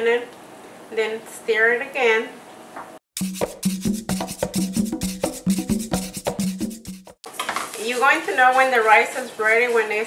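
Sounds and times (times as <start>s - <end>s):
percussion background music: 3.2s - 7.3s.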